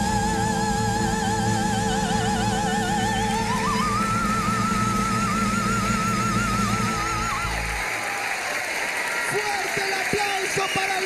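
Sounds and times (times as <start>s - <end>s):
woman singing high note with vibrato: 0.0s - 7.8s.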